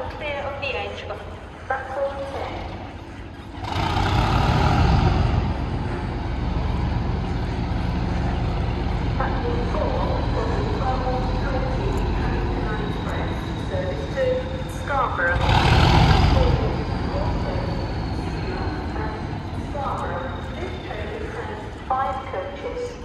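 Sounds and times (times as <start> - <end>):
diesel locomotive engine starting: 0.0 - 23.0.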